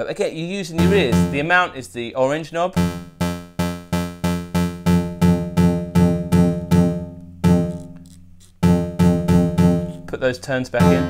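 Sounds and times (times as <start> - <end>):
repeated synthesizer note with reverb: 0.8 - 1.7, 2.8 - 8.0, 8.6 - 10.1, 10.8 - 11.0.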